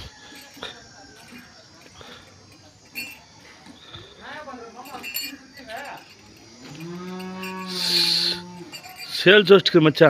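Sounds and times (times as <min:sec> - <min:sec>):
bull mooing: 0:06.6 - 0:09.0
hiss: 0:07.7 - 0:08.4.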